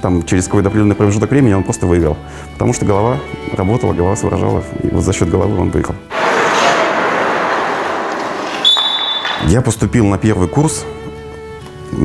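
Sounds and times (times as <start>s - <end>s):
skate blades scraping ice: 6.1s - 9.4s
high-pitched whistle blast: 8.5s - 9.5s.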